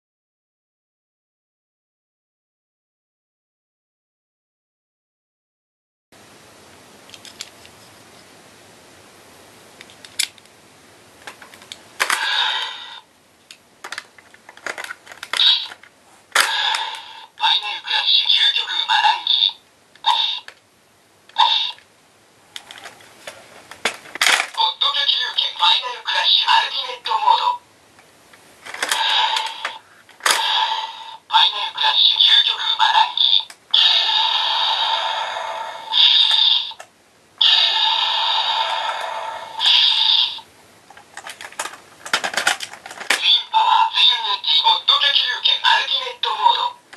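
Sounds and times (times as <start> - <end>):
toy electronic sound effects: 12.1 - 13.0, 15.3 - 15.8, 16.4 - 20.5, 21.4 - 21.8, 28.8 - 36.8, 37.4 - 40.4
plastic toy clicks: 13.8 - 17.0, 28.7 - 30.5, 41.0 - 43.2.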